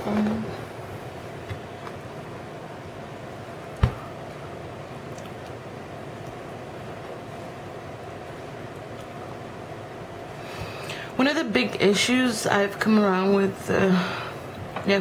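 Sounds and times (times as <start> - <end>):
room hiss and hum: 0.0 - 15.0.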